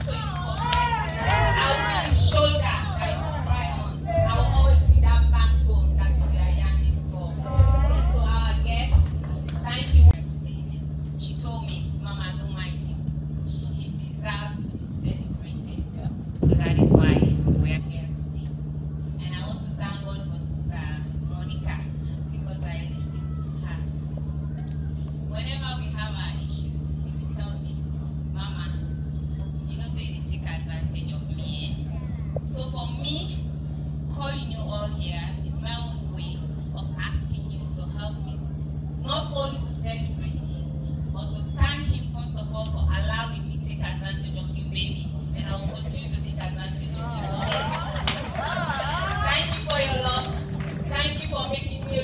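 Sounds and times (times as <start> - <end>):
steady low hum: 0.0 - 52.0
woman speaking over pa system: 1.3 - 18.5, 19.2 - 23.9, 34.1 - 40.5, 41.2 - 47.9, 49.0 - 52.0.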